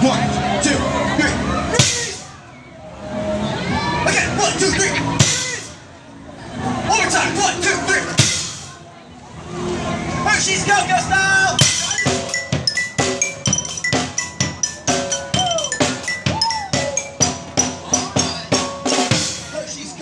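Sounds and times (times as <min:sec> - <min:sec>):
voices calling out: 0:00.0 - 0:20.0.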